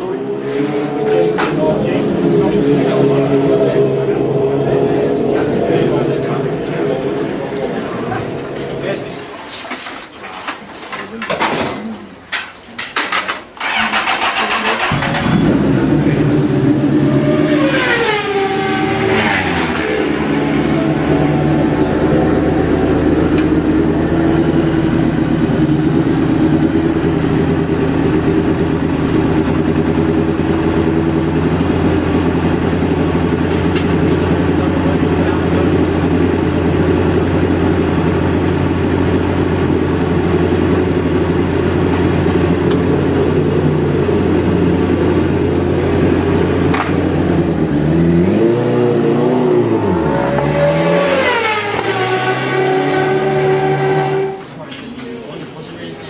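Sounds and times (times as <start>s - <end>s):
motorcycle engine starting and idling: 12.8s - 52.6s.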